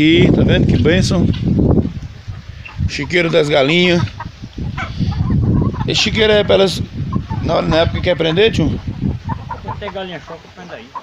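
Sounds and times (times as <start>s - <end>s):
chickens clucking: 0.1s - 11.0s.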